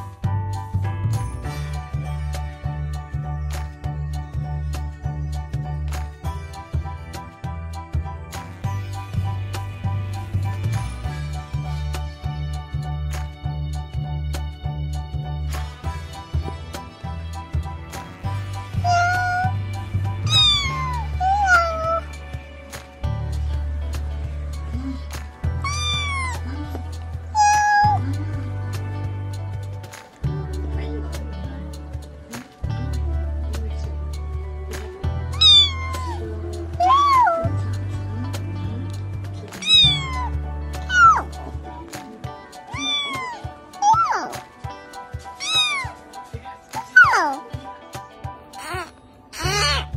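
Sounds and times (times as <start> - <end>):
background music: 0.0 - 49.9
kitten meowing: 18.8 - 19.6, 20.3 - 22.1, 25.6 - 26.5, 27.4 - 28.0, 35.3 - 36.2, 36.8 - 37.5, 39.6 - 41.3, 42.7 - 44.4, 45.4 - 46.0, 48.6 - 49.9.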